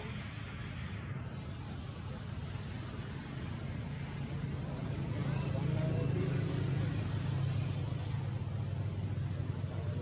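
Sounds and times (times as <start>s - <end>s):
faint distant voices: 0.0s - 10.0s
vehicle engine rumble: 0.0s - 10.0s.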